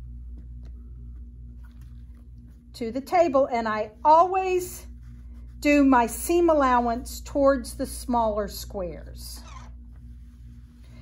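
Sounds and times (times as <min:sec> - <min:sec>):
steady low hum: 0:00.0 - 0:11.0
woman speaking: 0:02.8 - 0:05.0, 0:05.6 - 0:09.6.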